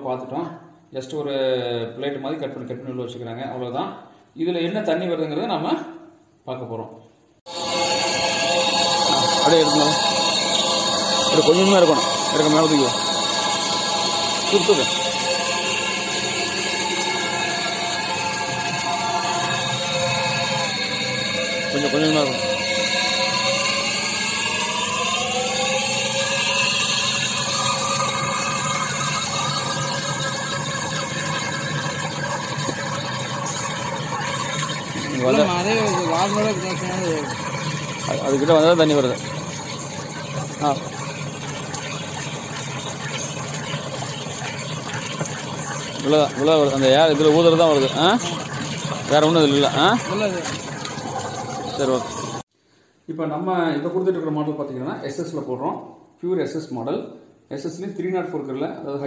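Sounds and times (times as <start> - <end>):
air compressor running: 7.5 - 52.4
water splashing in a plastic tank: 7.5 - 52.4
man talking: 9.1 - 10.1, 11.3 - 13.0, 14.5 - 15.0, 35.1 - 37.3.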